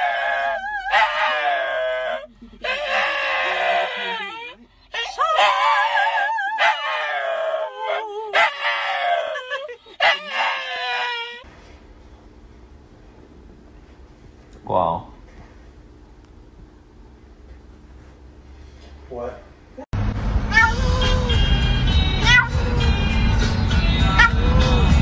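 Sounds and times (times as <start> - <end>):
dog howling: 0.0 - 11.5, 20.5 - 21.0, 22.2 - 22.6, 24.1 - 25.0.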